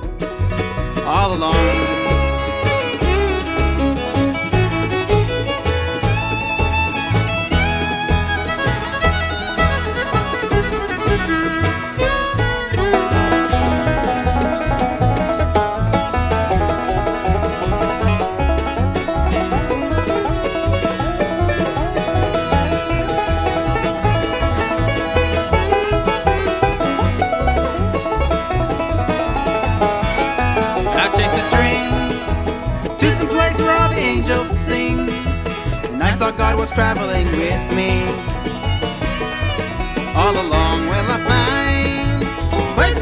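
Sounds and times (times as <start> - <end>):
banjo picking: 0.0 - 43.0
bluegrass band playing: 0.0 - 43.0.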